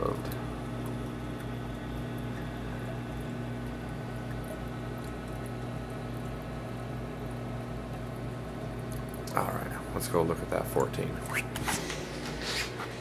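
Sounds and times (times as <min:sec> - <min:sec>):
water trickling and bubbling: 0:00.0 - 0:11.6
aquarium pump hum: 0:00.0 - 0:13.0.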